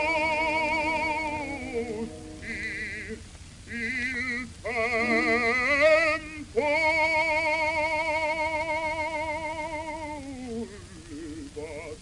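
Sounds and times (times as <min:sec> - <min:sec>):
solo singer with vibrato: 0:00.0 - 0:12.0.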